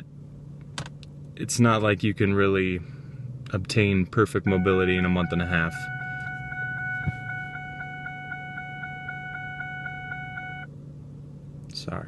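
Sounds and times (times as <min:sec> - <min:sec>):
low steady hum: 0:00.0 - 0:12.0
pulsing high electronic tone: 0:04.4 - 0:10.7.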